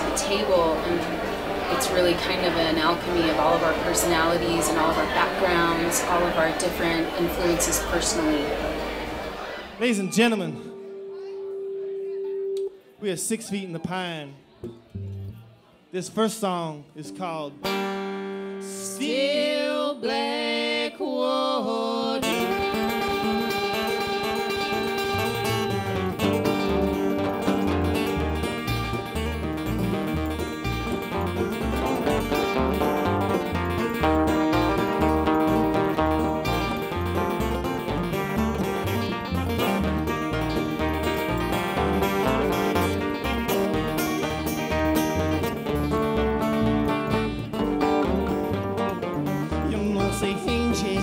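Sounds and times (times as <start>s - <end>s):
banjo picking: 0.0s - 12.9s, 14.6s - 15.6s, 17.0s - 20.4s, 22.1s - 51.0s
acoustic guitar picking: 0.0s - 13.0s, 17.1s - 19.0s, 22.2s - 51.0s
upright bass line: 14.6s - 15.5s, 22.3s - 51.0s
fiddle: 22.2s - 51.0s.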